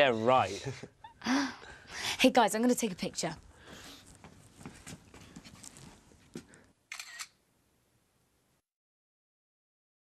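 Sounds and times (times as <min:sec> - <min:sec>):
camera shutter click: 0:06.9 - 0:07.4.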